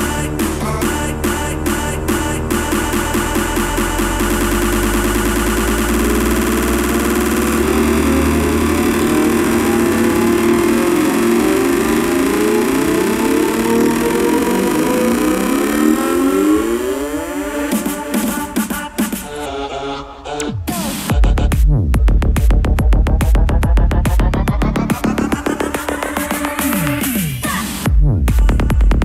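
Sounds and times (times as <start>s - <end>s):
held bass: 0.0s - 18.1s, 21.1s - 25.6s
rising synth sweeps: 0.0s - 20.5s
psytrance synth patterns: 0.0s - 28.0s.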